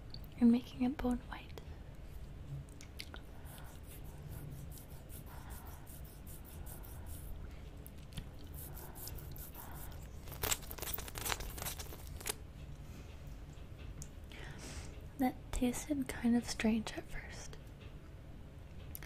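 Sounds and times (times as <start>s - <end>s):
wet licking and sucking of lollipop: 8.0s - 12.4s.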